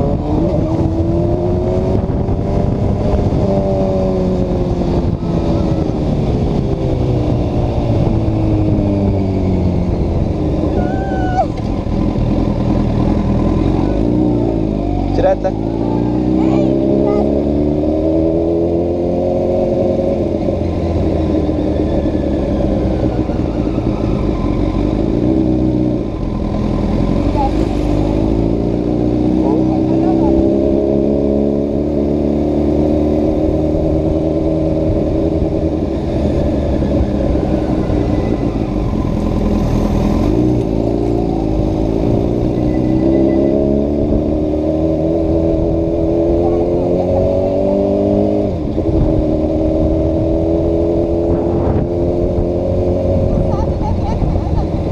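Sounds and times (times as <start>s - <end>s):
wind rush: 0.0s - 11.9s, 47.1s - 54.9s
motorcycle engine revving: 0.0s - 54.9s.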